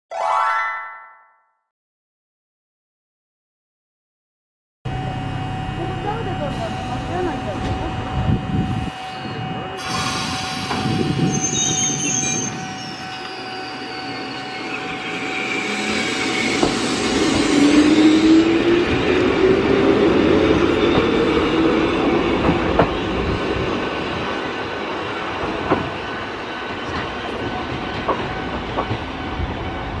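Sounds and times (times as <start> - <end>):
ringing tone sliding up in pitch: 0.1 - 1.6
electric train running: 4.9 - 26.0
clacks from the rails: 22.4 - 23.0, 25.4 - 29.2.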